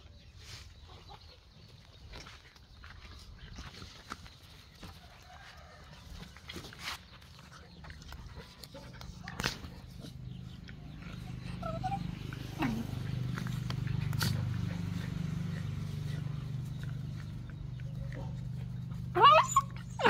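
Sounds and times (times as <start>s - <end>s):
dogs growling: 7.5s - 20.0s
puppy whining: 9.9s - 20.0s.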